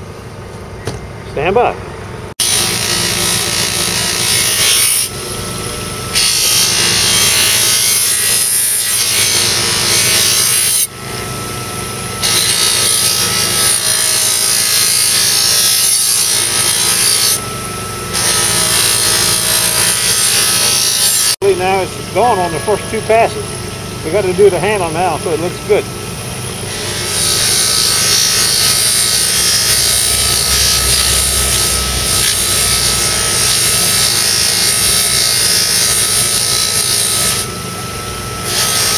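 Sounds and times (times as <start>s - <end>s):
electric buffer motor running: 2.4s - 38.9s.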